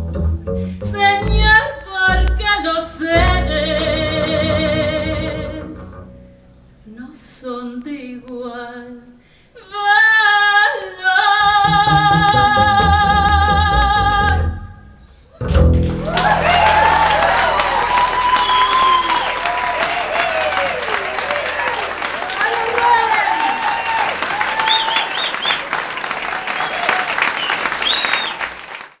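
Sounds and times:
low held bass note: 0:11.4 - 0:19.8
audience applauding and cheering: 0:15.6 - 0:29.0
whistles: 0:16.4 - 0:21.3, 0:23.4 - 0:28.6.

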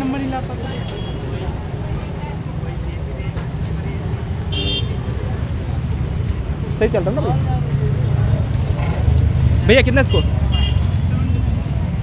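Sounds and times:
scattered crowd voices: 0:00.0 - 0:12.0.

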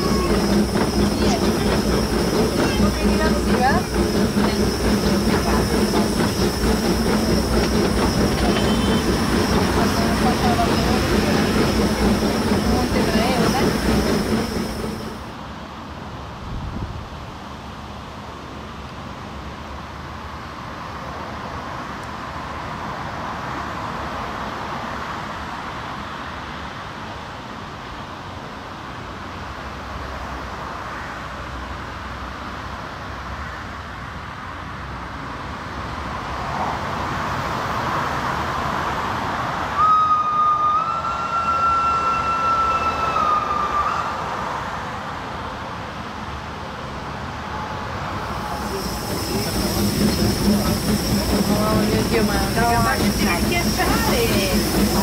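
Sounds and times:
steam locomotive exhaust rushing: 0:00.0 - 0:15.6, 0:46.2 - 0:55.0
steam whistle high note: 0:08.4 - 0:09.4, 0:39.8 - 0:44.3.

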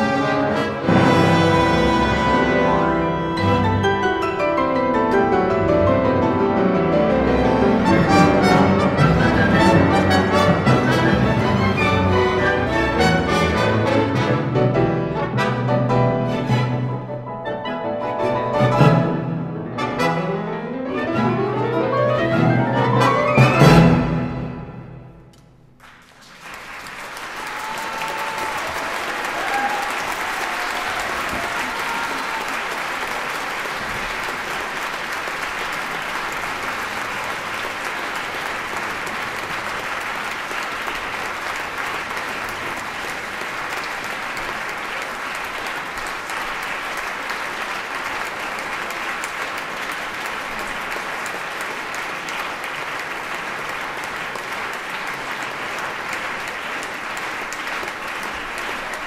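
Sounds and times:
audience applauding: 0:07.0 - 0:14.3, 0:25.8 - 0:59.0.

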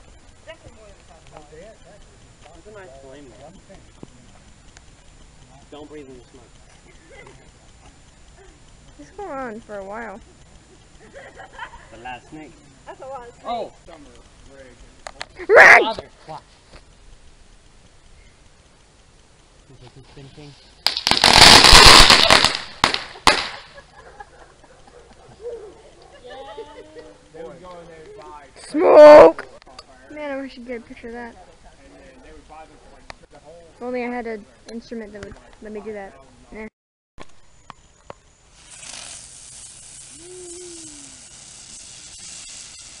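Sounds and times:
rapid crackling pops: 0:00.0 - 0:12.1, 0:12.8 - 0:26.2, 0:37.2 - 0:43.0
firework hissing: 0:00.0 - 0:25.2, 0:38.0 - 0:43.0
firework burst: 0:16.9 - 0:24.0, 0:38.4 - 0:43.0
sharp firework cracks: 0:20.8 - 0:24.0, 0:37.2 - 0:43.0
person making vocal sound: 0:40.1 - 0:41.2.

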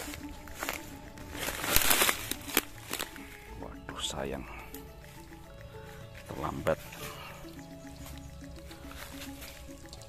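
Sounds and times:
background music: 0:00.0 - 0:10.0
dry leaves rustling and crackling: 0:00.0 - 0:10.0.

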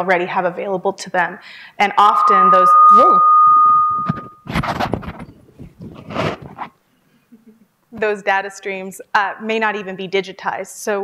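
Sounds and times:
microphone feedback squeal: 0:02.0 - 0:05.4.

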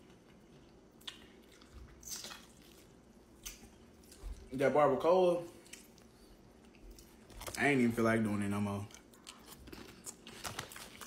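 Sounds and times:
soft chewing: 0:00.0 - 0:04.6, 0:05.4 - 0:07.6, 0:08.7 - 0:11.0.

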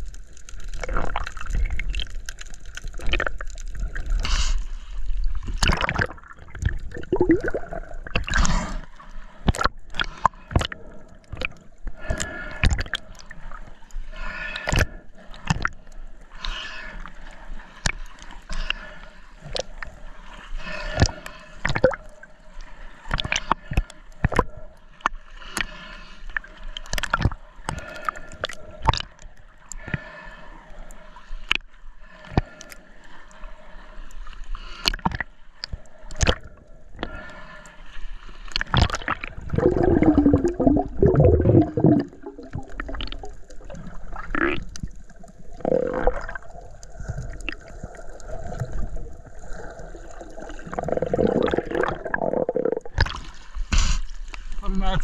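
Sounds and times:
underwater clicking crackle: 0:00.0 - 0:20.0, 0:20.6 - 0:33.4, 0:34.1 - 0:37.7, 0:38.3 - 0:54.6
muffled water and bubbles gurgling: 0:00.0 - 0:55.0.

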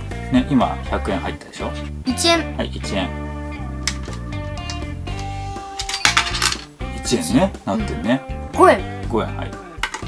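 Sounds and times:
background music: 0:00.0 - 0:10.0
coin clinking into piggy bank: 0:05.7 - 0:06.7.

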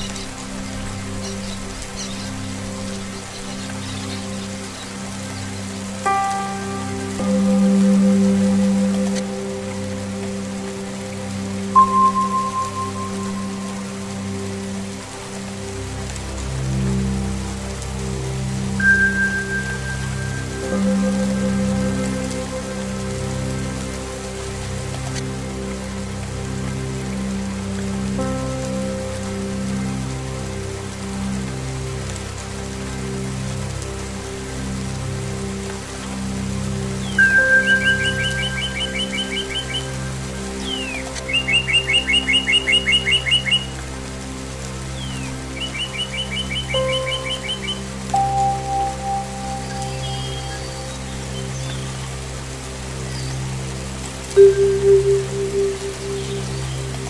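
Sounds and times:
slow ambient music: 0:00.0 - 0:57.0
steady rain: 0:00.0 - 0:57.0
songbird trilling: 0:37.0 - 0:39.9, 0:40.6 - 0:43.7, 0:45.0 - 0:50.9.

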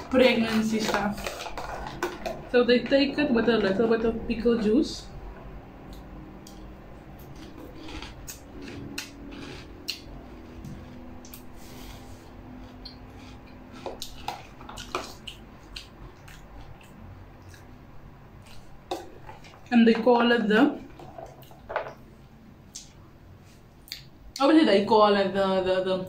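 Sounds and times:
spoon scraping plastic tub: 0:00.0 - 0:04.7, 0:07.2 - 0:15.2
chewing: 0:00.4 - 0:02.4, 0:05.8 - 0:11.6, 0:12.4 - 0:19.7, 0:20.8 - 0:22.0.

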